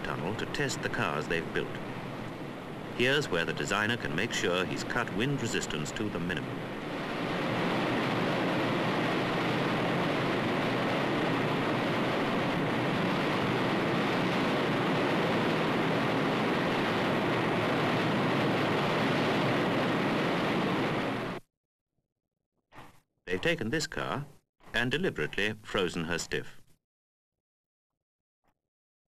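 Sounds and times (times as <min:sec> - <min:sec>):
wind tunnel airflow rushing: 0:00.0 - 0:21.4.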